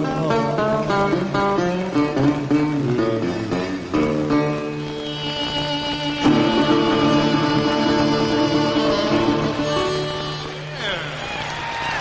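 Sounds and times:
acoustic blues guitar: 0:00.0 - 0:11.4.

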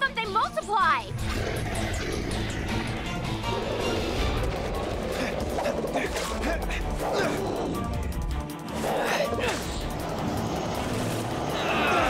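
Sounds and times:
dramatic cartoon action music: 0:00.0 - 0:12.0.

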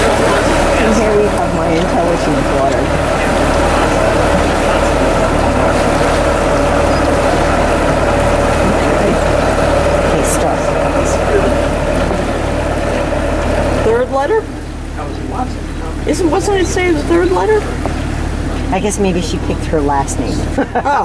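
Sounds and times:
water rushing through sluices: 0:00.0 - 0:20.6
boat engine running: 0:00.0 - 0:21.0.

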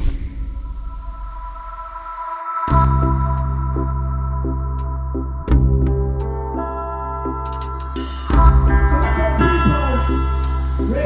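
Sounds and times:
low electronic hit: 0:00.0 - 0:03.9, 0:07.6 - 0:11.0
steady synthesized tone: 0:00.0 - 0:11.0.

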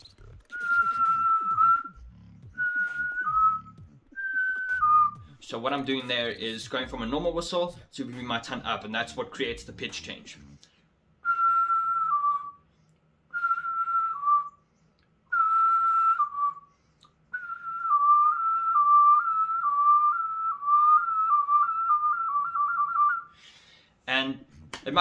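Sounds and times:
person whistling two notes: 0:00.5 - 0:05.4, 0:11.2 - 0:12.6, 0:13.3 - 0:14.6, 0:15.3 - 0:16.7, 0:17.3 - 0:23.4.

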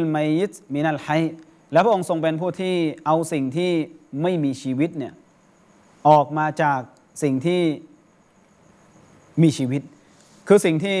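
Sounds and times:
man lecturing: 0:00.0 - 0:05.2, 0:06.0 - 0:07.9, 0:09.4 - 0:11.0
faint high pulsing tone: 0:00.0 - 0:11.0
low room noise: 0:00.0 - 0:11.0.

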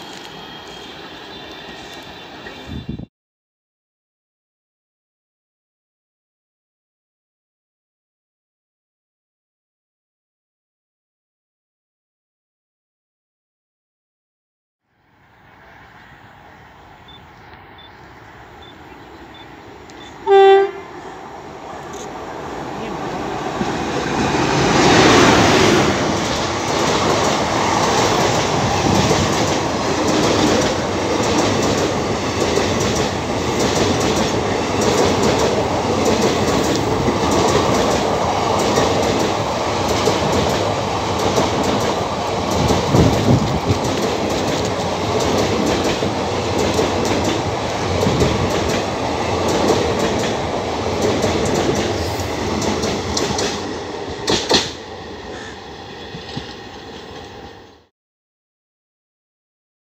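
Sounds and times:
train passing at speed: 0:00.0 - 0:03.1, 0:14.9 - 0:57.9
wheels clacking over rail joints: 0:25.9 - 0:54.8.

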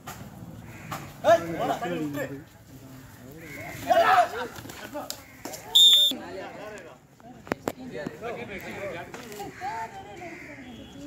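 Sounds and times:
quiet chatter: 0:00.4 - 0:11.0.

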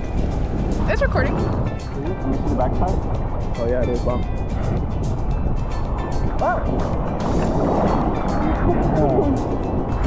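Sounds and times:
wind noise on microphone: 0:00.0 - 0:10.0
sea water sloshing: 0:04.3 - 0:10.0.

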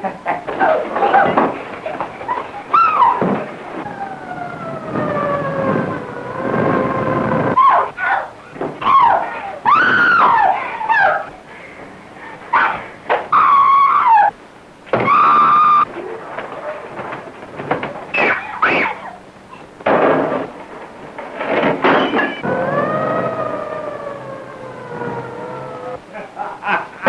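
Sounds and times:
film soundtrack hiss: 0:00.0 - 0:27.0
high-pitched wailing cries: 0:02.2 - 0:06.3, 0:07.5 - 0:11.4, 0:12.5 - 0:14.4, 0:15.0 - 0:15.9.

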